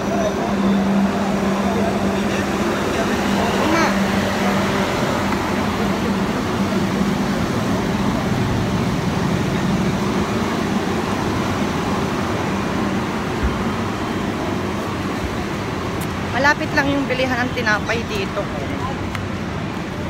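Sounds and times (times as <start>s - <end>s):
city street traffic: 0.0s - 20.0s.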